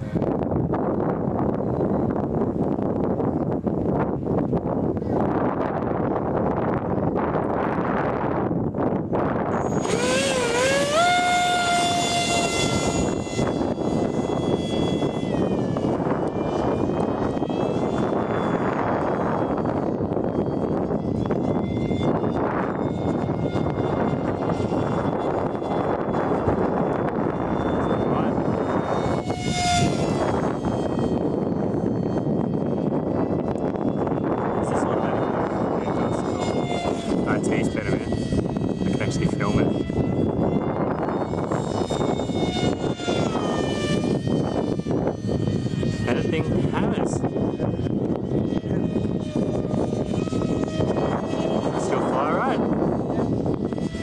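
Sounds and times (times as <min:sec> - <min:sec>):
rc jet fan whine: 0:00.0 - 0:54.0
steady rushing noise: 0:00.0 - 0:54.0.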